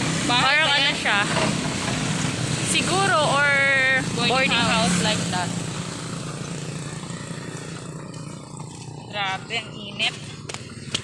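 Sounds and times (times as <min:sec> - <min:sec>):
vehicle engine droning: 0:00.0 - 0:11.0.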